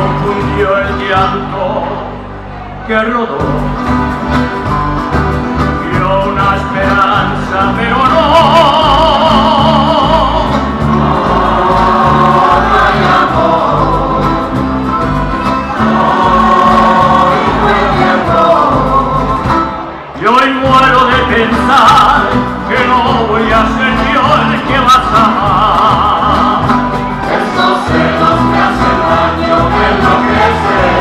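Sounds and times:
electric bass: 0.0 - 2.6, 3.2 - 31.0
accordion: 3.5 - 20.2, 20.9 - 31.0
people singing: 5.9 - 14.7, 15.7 - 19.8, 21.4 - 31.0.

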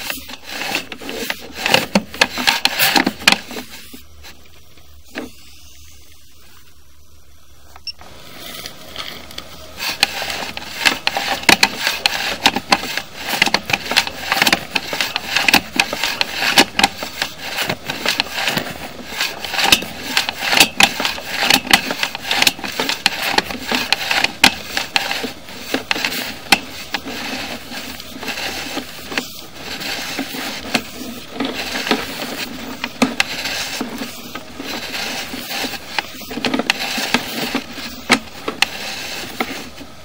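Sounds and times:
camera clattering and scraping in pipe: 0.0 - 5.7, 8.0 - 40.0
faint steady hum: 0.0 - 40.0.

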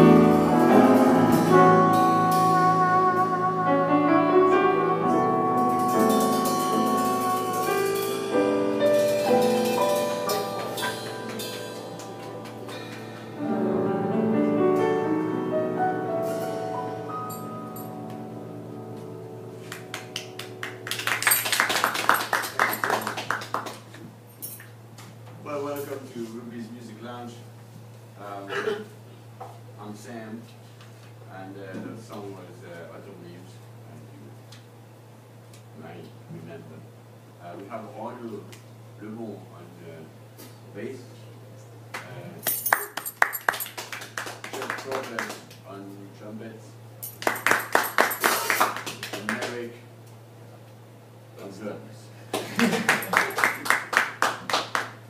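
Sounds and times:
band final chord ringing: 0.0 - 21.5
audience clapping: 10.6 - 13.1, 19.6 - 24.0, 41.9 - 45.6, 47.2 - 49.8, 52.3 - 55.0.

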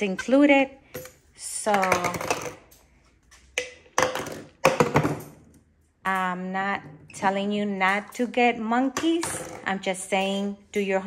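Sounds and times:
plastic bottles knocking on stone: 1.7 - 2.6, 3.6 - 5.4.

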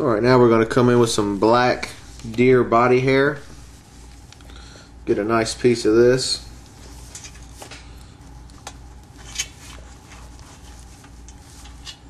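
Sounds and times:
low steady hum: 0.0 - 12.0
light handling rustles and clicks: 6.6 - 12.0.

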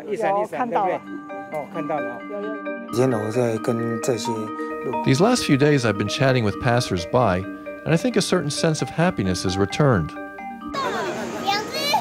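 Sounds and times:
crowd chatter: 0.0 - 2.6, 10.7 - 12.0
soft background music: 0.0 - 11.2
children's voices: 10.7 - 12.0.

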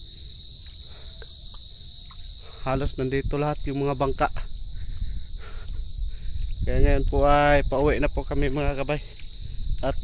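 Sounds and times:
crickets chirring: 0.0 - 10.0.

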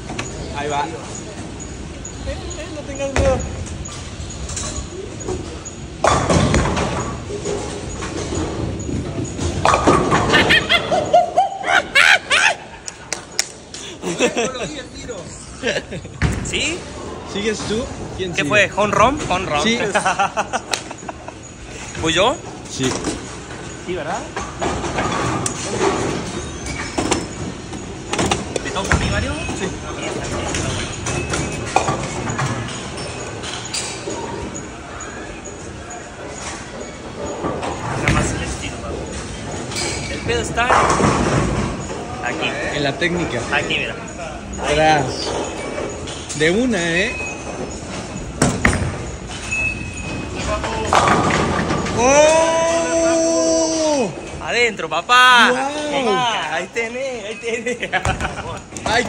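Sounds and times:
bowling balls rolling: 0.0 - 54.8, 57.8 - 59.0
balls and pins clattering: 4.4 - 11.2, 36.4 - 43.8, 47.1 - 52.4
background chatter: 27.8 - 48.4.

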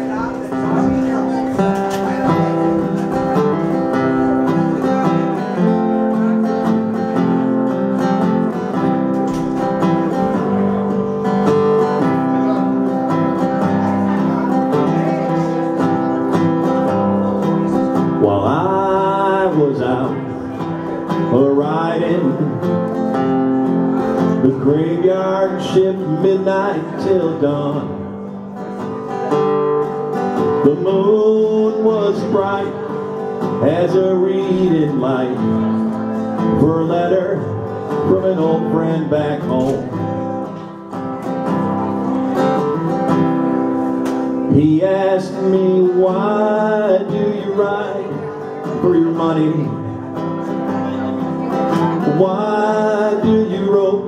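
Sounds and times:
amplified acoustic guitar: 0.0 - 54.0.

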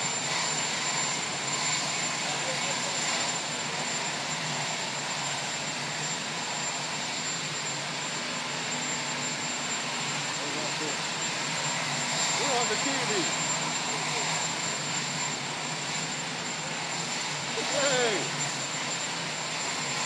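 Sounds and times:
aircraft turbine engines idling: 0.0 - 20.0.

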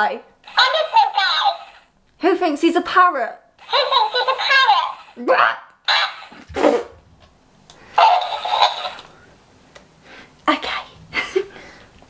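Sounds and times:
toy playing recorded laugh: 0.5 - 1.8, 3.6 - 5.1, 5.9 - 6.4, 8.0 - 9.1.

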